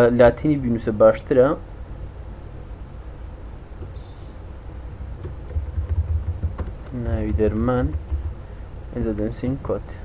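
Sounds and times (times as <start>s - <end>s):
keyboard key clicks: 5.2s - 8.4s.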